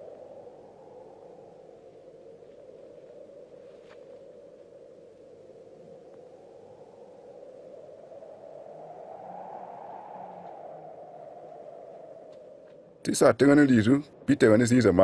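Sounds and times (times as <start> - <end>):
faint low notes: 12.7 - 15.0.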